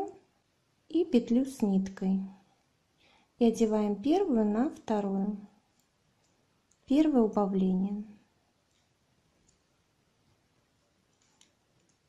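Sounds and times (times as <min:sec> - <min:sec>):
knitting needles clicking: 0:05.7 - 0:06.9, 0:08.6 - 0:09.8, 0:10.8 - 0:12.0.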